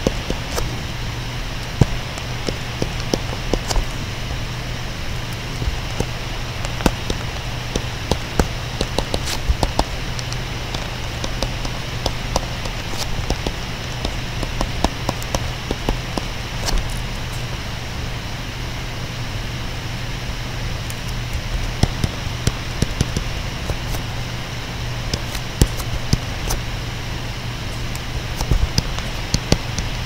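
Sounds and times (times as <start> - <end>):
electrical hum and hiss: 0.0 - 30.0
stylus tapping on tablet screen: 1.7 - 3.9, 5.4 - 16.9, 21.7 - 24.0, 25.1 - 26.6, 27.9 - 29.9.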